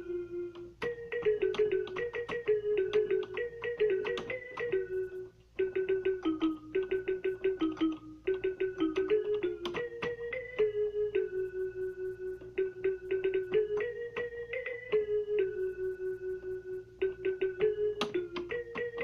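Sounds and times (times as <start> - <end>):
electronic keyboard melody: 0.0 - 19.0.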